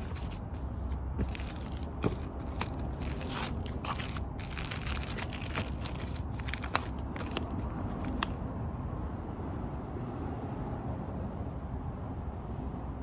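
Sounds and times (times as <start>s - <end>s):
plastic sleeves and paper rustling: 0.0s - 8.5s.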